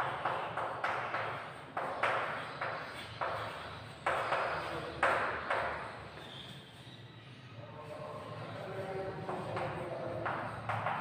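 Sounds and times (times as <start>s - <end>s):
chalk scratching on chalkboard: 0.0s - 11.0s.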